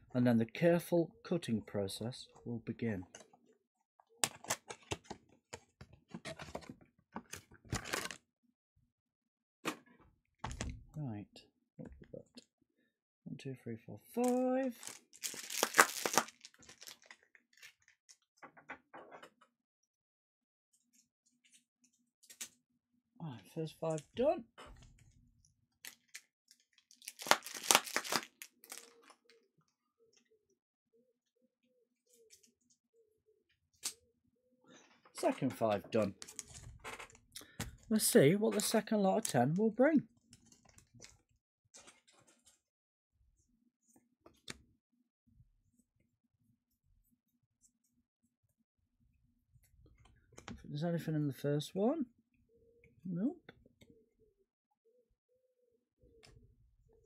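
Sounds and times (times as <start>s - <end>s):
packaging tearing: 14.2s - 17.8s, 26.9s - 29.2s
packaging crinkling and crackling: 14.2s - 18.2s, 25.8s - 29.3s.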